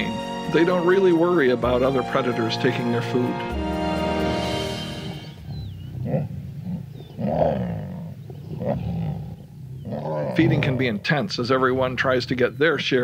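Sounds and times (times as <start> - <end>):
background music: 0.0 - 5.8
lions growling: 5.0 - 11.9.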